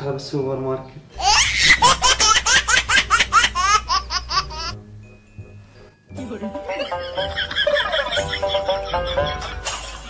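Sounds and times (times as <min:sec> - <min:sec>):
high-pitched laughter: 0:01.2 - 0:04.8, 0:06.8 - 0:10.0.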